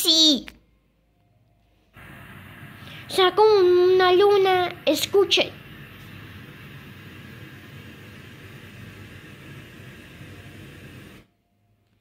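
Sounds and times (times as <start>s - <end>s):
hiss: 2.0s - 11.3s
steady rumbling noise: 2.0s - 11.3s.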